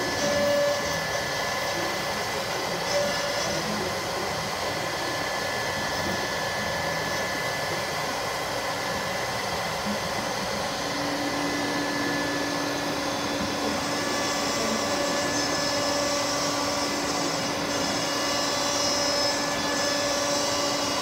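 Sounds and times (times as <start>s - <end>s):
router spindle whine: 0.0s - 21.0s.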